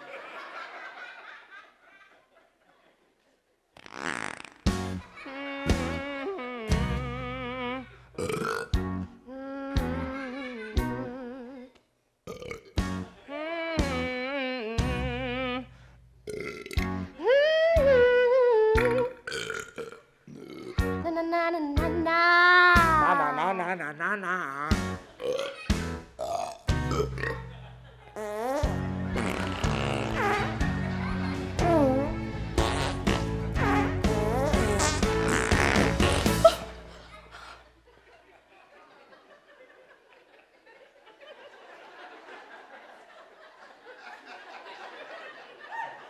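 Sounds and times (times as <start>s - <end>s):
music: 4.6s - 8.0s, 8.7s - 11.3s, 12.8s - 13.2s, 13.8s - 15.7s, 16.8s - 17.2s, 17.8s - 18.2s, 20.8s - 23.3s, 24.7s - 37.3s
long wavering burps: 5.6s - 8.8s, 12.3s - 12.8s, 16.3s - 16.9s, 18.8s - 20.8s, 25.2s - 25.6s, 26.2s - 27.5s, 28.2s - 30.5s, 32.6s - 36.8s.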